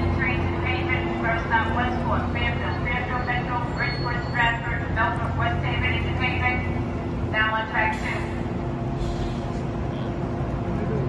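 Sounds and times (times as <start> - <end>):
woman talking: 0.0 - 8.4
electric train humming: 0.0 - 11.0.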